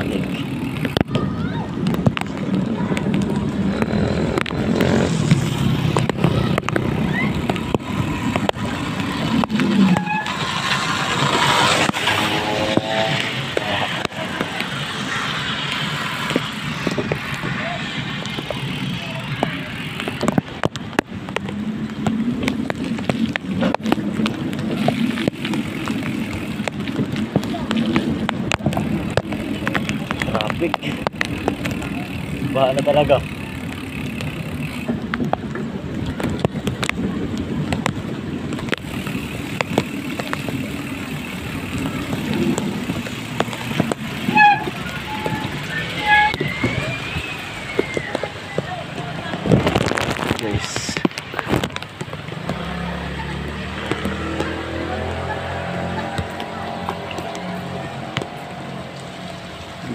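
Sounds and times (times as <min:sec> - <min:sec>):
vehicle road and wind noise: 0:00.0 - 0:59.9
tyres hissing on wet road: 0:03.8 - 0:21.0, 0:38.6 - 0:59.9.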